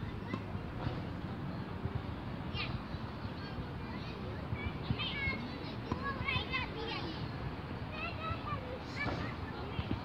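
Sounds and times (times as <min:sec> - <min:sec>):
children calling and chattering: 0:00.0 - 0:10.0
outdoor background noise: 0:00.0 - 0:10.0.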